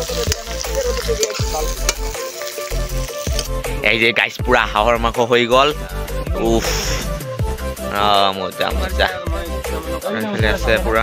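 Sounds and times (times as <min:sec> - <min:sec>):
curry sizzling in a wok: 0:00.0 - 0:03.8
background music with low beat: 0:00.0 - 0:11.0.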